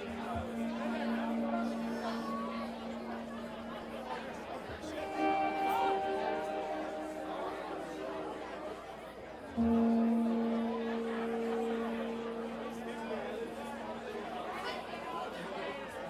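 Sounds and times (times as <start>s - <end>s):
electric guitar through amp: 0.0s - 14.9s
crowd chatter: 0.0s - 16.0s.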